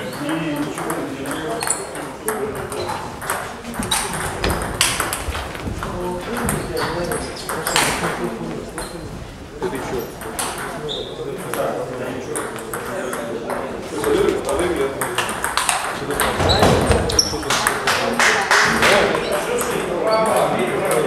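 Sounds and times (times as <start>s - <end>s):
voices talking: 0.0s - 21.0s.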